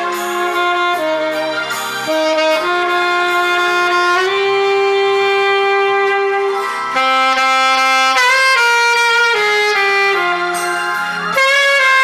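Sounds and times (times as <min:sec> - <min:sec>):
alto saxophone ballad melody: 0:00.0 - 0:12.0.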